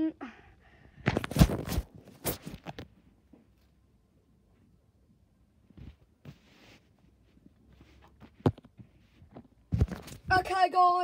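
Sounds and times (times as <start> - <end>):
rustling and knocking handling noise: 1.0 - 3.5, 5.7 - 10.5.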